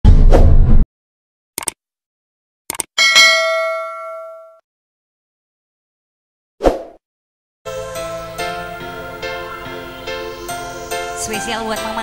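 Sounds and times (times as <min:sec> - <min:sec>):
notification bell ding: 0:03.0 - 0:04.6.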